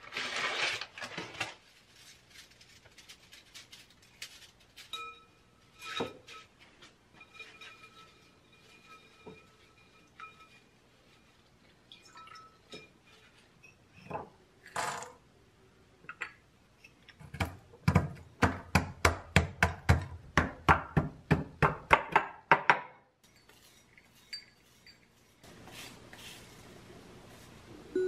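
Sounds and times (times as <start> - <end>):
pestle pounding nuts in mortar: 17.3 - 22.9.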